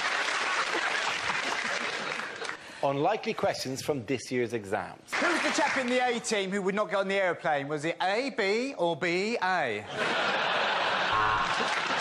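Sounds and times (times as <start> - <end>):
audience applauding: 0.0 - 2.7, 5.1 - 6.1, 10.4 - 12.0
audience laughing: 0.3 - 2.6, 9.8 - 12.0.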